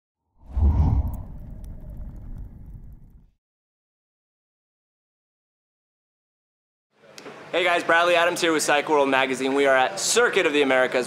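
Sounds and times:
deep boom: 0.4 - 3.3
whoosh: 0.4 - 3.3
rumble: 0.4 - 3.4.

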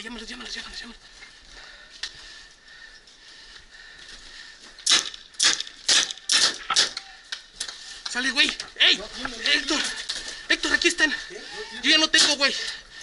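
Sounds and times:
paintball marker firing pops: 4.8 - 7.0.

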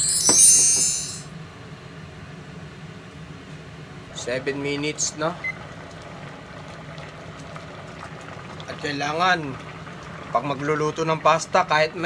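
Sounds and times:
pot of water boiling: 4.1 - 12.0.

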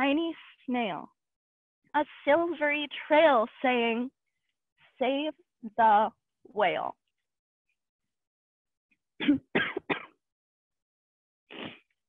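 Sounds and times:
woman coughing: 9.2 - 10.2.

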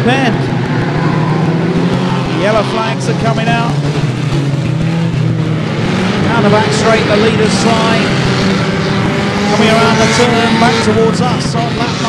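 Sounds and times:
racing car engines: 0.0 - 12.0.

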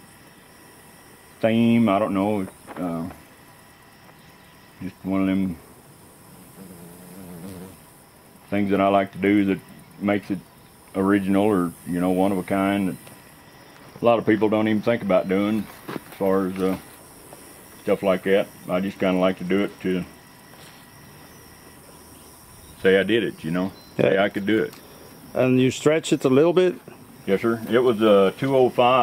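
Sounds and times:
faint low wavering hum: 0.0 - 29.0
insects chirring: 0.0 - 29.0.

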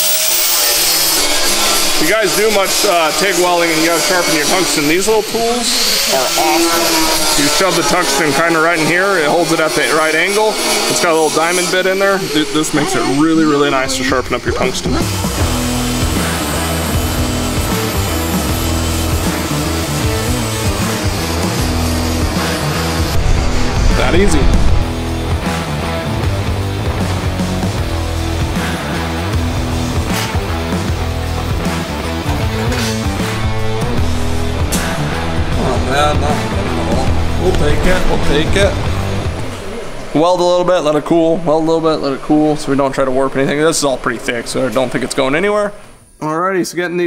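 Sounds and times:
angle grinder grinding steel: 0.0 - 25.8, 27.0 - 40.1
background music: 0.0 - 45.8.

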